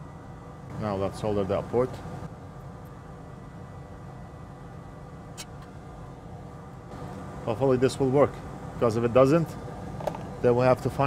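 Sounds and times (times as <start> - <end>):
faint whine: 0.0 - 11.0
low background hum: 0.0 - 11.0.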